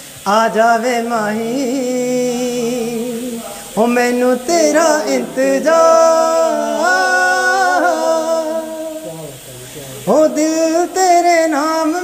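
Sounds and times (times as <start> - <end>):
man singing unaccompanied: 0.0 - 12.0.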